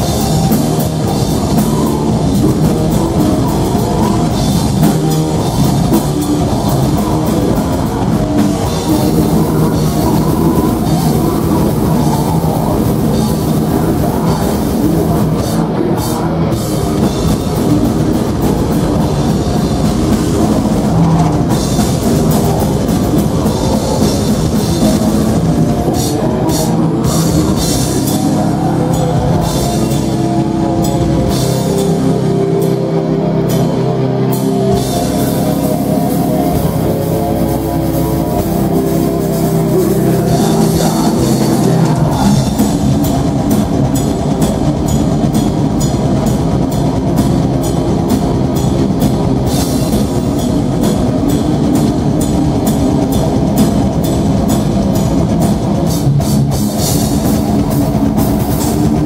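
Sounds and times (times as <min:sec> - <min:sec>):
bass guitar sustained notes: 0:00.0 - 0:59.0
distorted electric guitars: 0:00.0 - 0:59.0
fast dense drumming: 0:00.0 - 0:59.0
heavy metal band playing live: 0:00.0 - 0:59.0.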